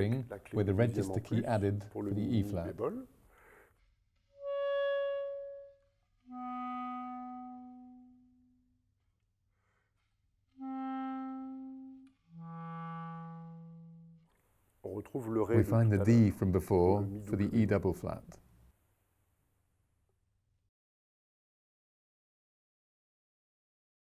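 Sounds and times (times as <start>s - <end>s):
clarinet held notes: 0.7s - 3.0s, 4.3s - 8.6s, 10.5s - 14.3s.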